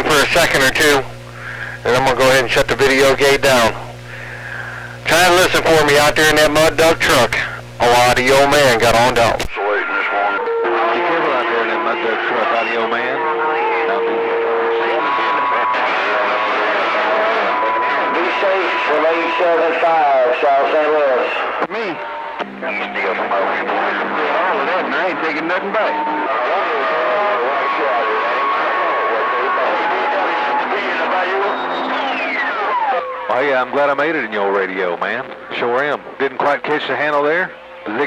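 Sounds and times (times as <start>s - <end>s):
radio whistles: 0.0s - 35.7s
garbled radio voices: 0.0s - 38.0s
radio static: 0.0s - 38.0s
whistle gliding down in pitch: 28.2s - 33.3s
heterodyne whistles: 31.3s - 33.3s.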